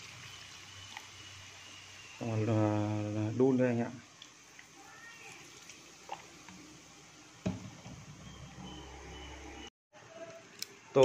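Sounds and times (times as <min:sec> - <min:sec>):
liquid trickling into a pot: 0:04.0 - 0:07.7
knock: 0:07.4 - 0:08.0.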